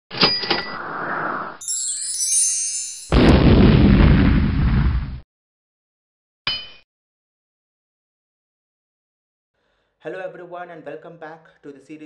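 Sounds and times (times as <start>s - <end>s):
high shimmering chime: 1.6s - 3.2s.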